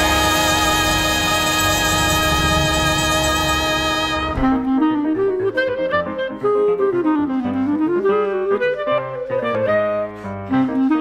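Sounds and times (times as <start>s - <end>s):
big band music: 0.0s - 5.5s.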